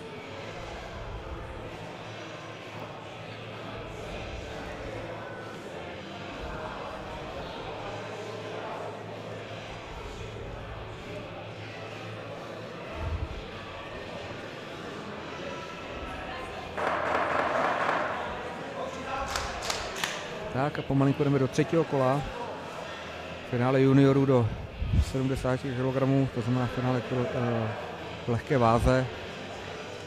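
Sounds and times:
murmur of voices in a hall: 0.0s - 30.0s
sharp knocks: 16.8s - 18.2s.

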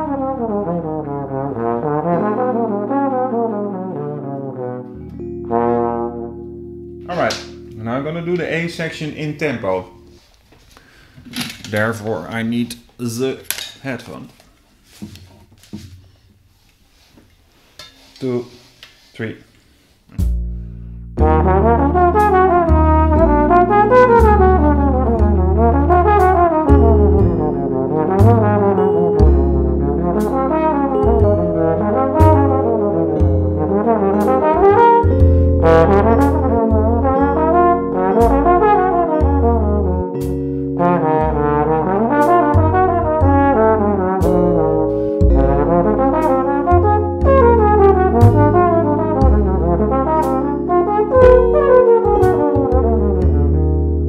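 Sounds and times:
trombone playing jazz: 0.0s - 10.3s, 20.1s - 54.0s.

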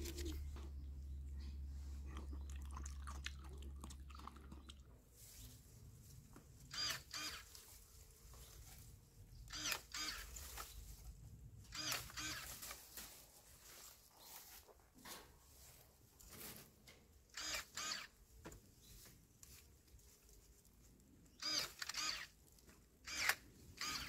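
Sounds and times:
close-up chewing and crunching: 1.3s - 5.1s.

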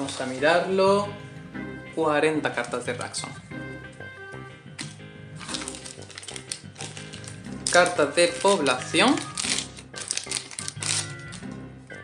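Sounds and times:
plastic wrapping crinkling: 0.0s - 0.8s, 4.8s - 11.6s
background music: 0.0s - 12.0s.

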